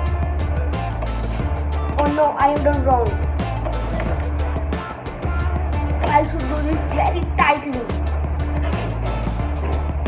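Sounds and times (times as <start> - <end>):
music with deep bass line: 0.0 - 10.0.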